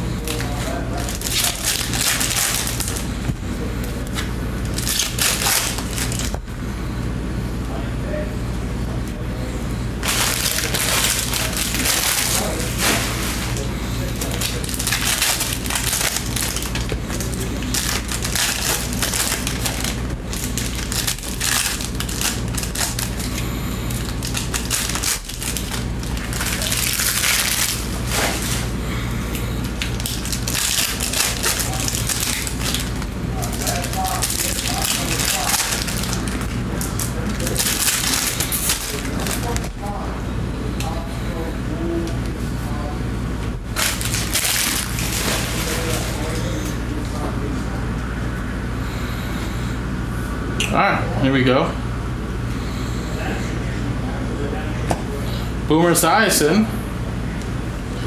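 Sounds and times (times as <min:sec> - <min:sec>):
steady low hum: 0:00.0 - 0:58.0
plastic wrappers crinkling: 0:00.2 - 0:03.3, 0:04.0 - 0:06.4, 0:10.0 - 0:40.0, 0:43.7 - 0:47.0.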